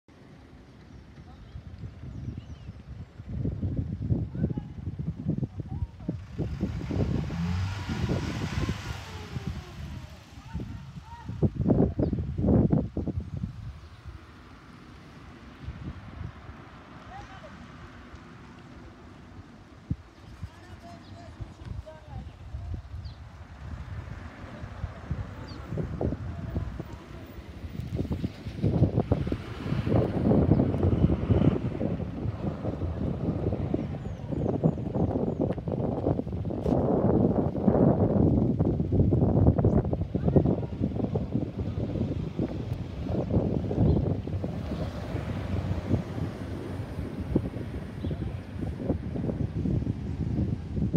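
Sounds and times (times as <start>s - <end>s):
wind buffeting microphone: 0.9s - 50.9s
motor vehicle passing: 5.5s - 50.9s.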